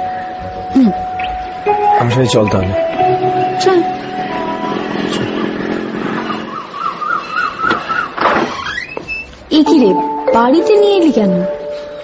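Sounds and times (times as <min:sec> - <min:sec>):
wavering siren-like warble: 0:00.0 - 0:07.7
road traffic: 0:00.0 - 0:12.0.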